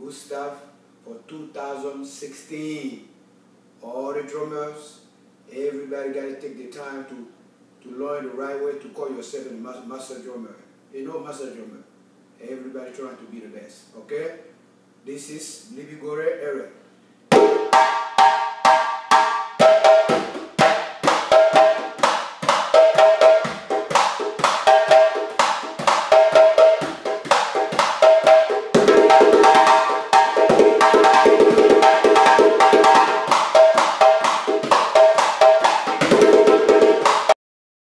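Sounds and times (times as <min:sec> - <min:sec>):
djembe hand drumming: 0:17.3 - 0:37.4.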